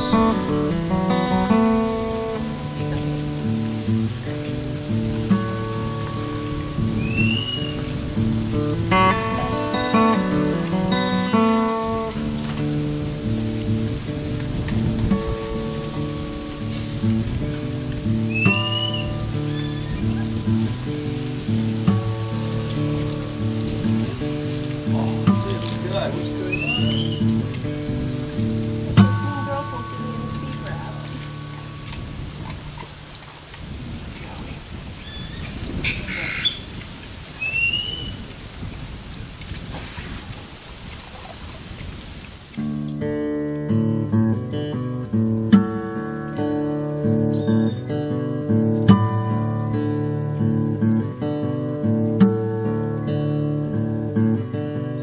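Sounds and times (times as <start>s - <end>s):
water splashing: 0.0s - 43.6s
background hiss: 0.0s - 55.0s
rising whistle-like tone: 7.0s - 7.8s, 18.3s - 19.7s, 26.5s - 27.2s
background music of sustained notes: 7.9s - 32.4s.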